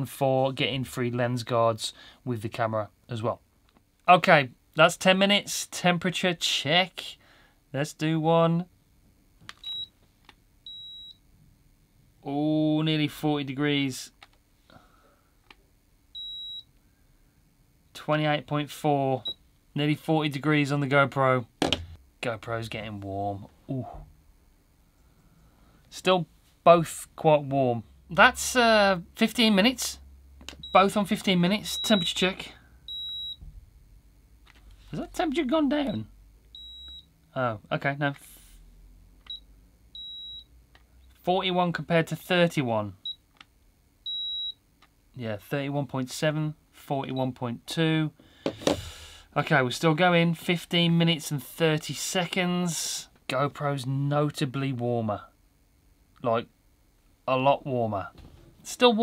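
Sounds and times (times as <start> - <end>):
high-pitched thermometer beep: 9.6 - 9.9, 10.7 - 11.2, 16.2 - 16.7, 31.6 - 32.2, 32.9 - 33.4, 35.8 - 37.1, 39.3 - 40.5, 44.0 - 44.6
thermometer high beep: 32.9 - 33.4, 35.8 - 37.1.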